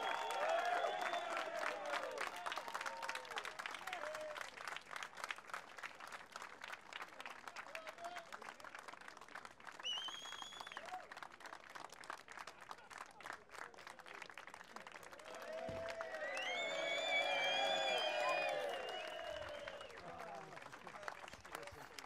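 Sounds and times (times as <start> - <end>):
high cheer: 0.0 - 4.6, 15.1 - 20.9
crowd applauding: 0.0 - 22.0.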